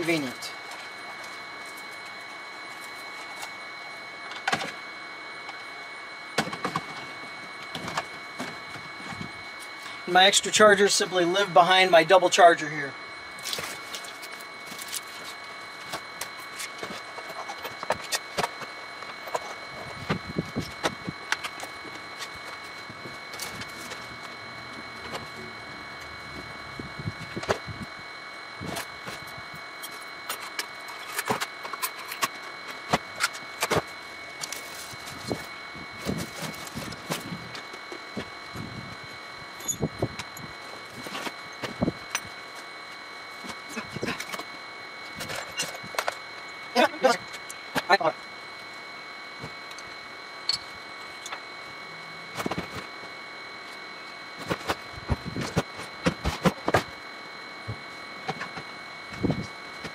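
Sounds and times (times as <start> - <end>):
faint high whine: 0.0 - 59.9.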